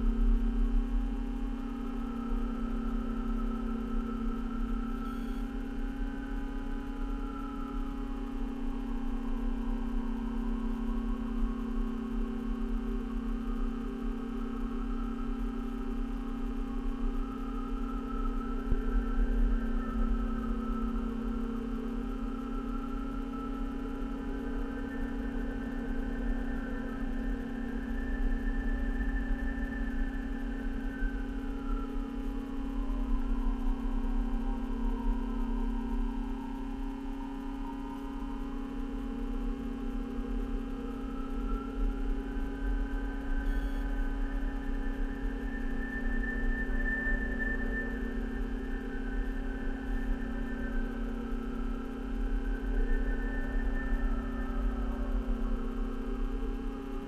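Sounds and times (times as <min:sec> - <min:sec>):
low drone with overtones: 0:00.0 - 0:57.0.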